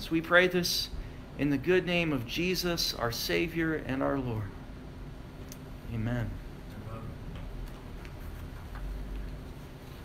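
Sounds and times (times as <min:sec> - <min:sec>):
low room hum: 0:00.0 - 0:10.0
paper ticks and rustles: 0:07.6 - 0:10.0.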